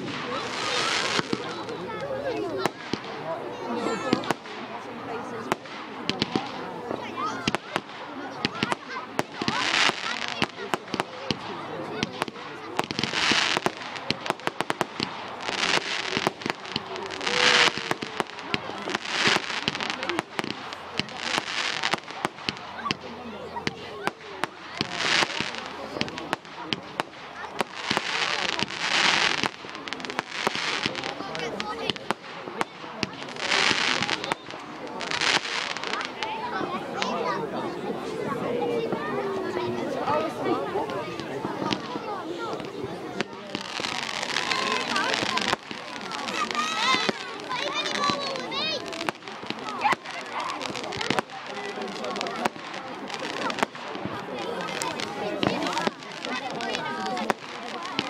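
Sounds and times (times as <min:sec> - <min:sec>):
fireworks bangs and crackles: 0:00.0 - 0:58.0
rushing hiss of fireworks: 0:00.0 - 0:58.0.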